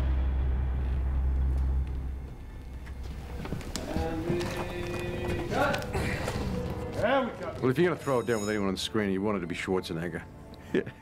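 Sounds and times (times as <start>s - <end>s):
deep low rumble: 0.0s - 5.3s.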